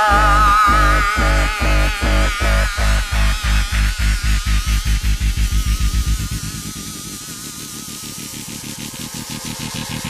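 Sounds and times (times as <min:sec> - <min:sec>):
dubstep track build-up: 0:00.0 - 0:10.0
fast pulsing bass: 0:00.0 - 0:10.0
noisy synth wash: 0:00.0 - 0:10.0.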